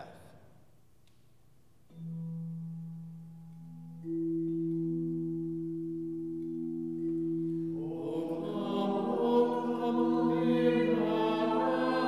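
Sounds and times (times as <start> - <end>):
organ chord: 2.1 - 12.0
group of voices singing chant: 7.8 - 12.0.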